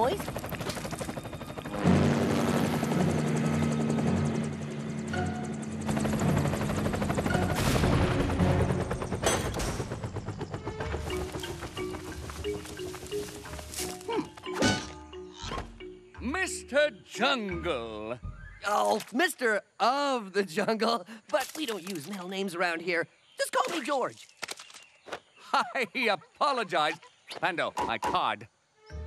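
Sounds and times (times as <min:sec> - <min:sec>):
cartoon helicopter rotor chopping: 0:00.0 - 0:12.9
music: 0:04.5 - 0:18.7.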